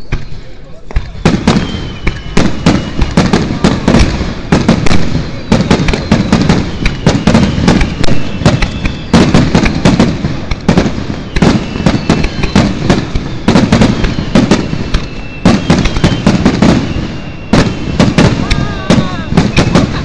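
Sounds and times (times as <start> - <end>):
fireworks bursting with sharp bangs: 0.0 - 20.0.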